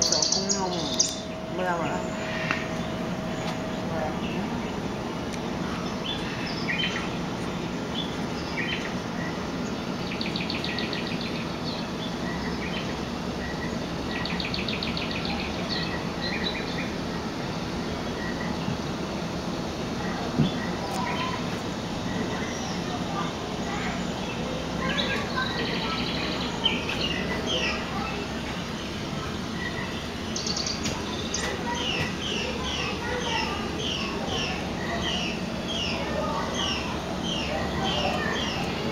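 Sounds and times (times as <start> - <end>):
bird trills: 0.0 - 5.0, 29.6 - 38.7
small birds chirping: 0.0 - 38.9
steady background noise: 0.0 - 38.9.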